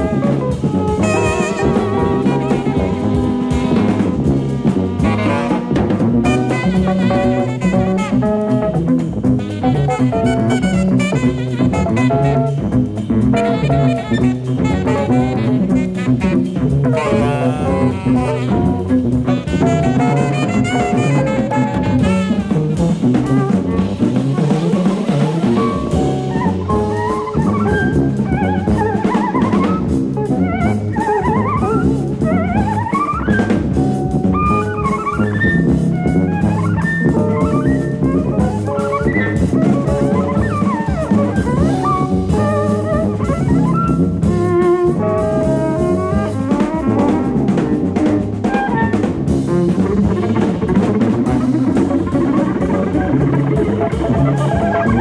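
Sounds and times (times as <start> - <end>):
busy drum kit: 0.0 - 55.0
jazz band playing: 0.0 - 55.0
low tuba line: 0.0 - 55.0.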